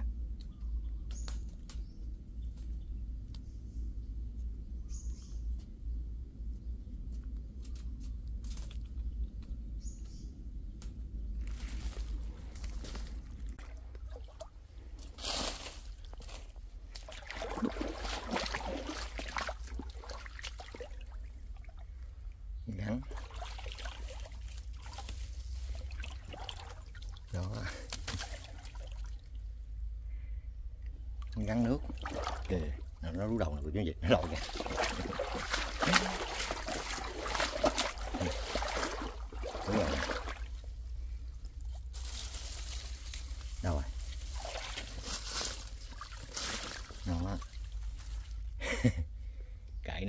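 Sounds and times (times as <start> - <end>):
stream water splashing: 11.5 - 14.8, 16.8 - 29.4, 31.2 - 33.4, 34.0 - 48.5.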